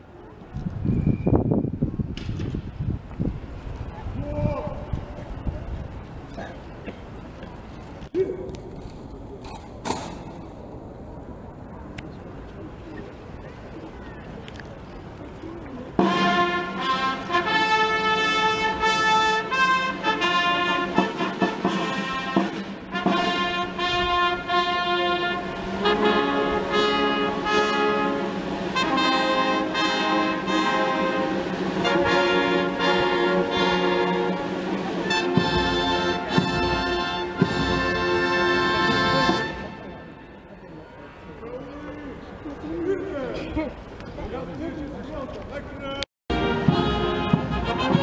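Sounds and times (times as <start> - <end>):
military brass band playing: 16.0 - 40.5, 46.3 - 48.0
heavy low beats: 46.3 - 48.0.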